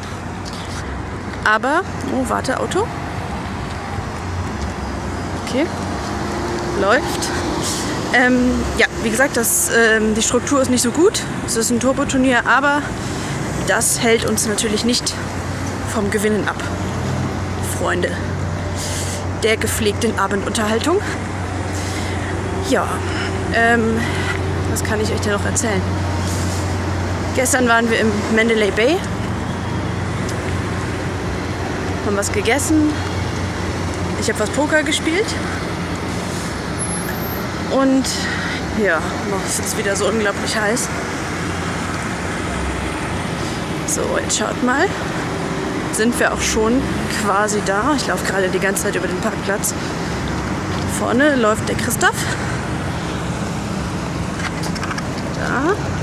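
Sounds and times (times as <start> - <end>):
traffic rumble: 0.0 - 56.0.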